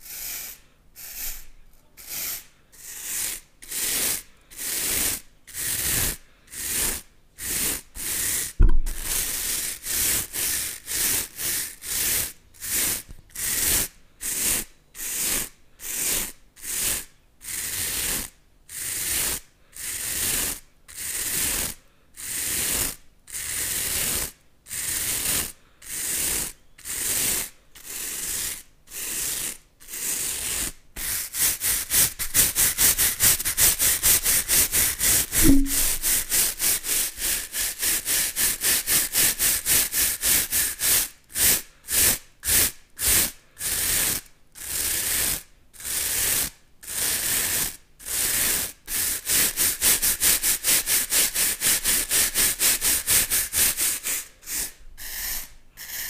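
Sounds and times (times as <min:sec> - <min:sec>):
scrub brushes rubbing together: 0:00.0 - 0:11.3.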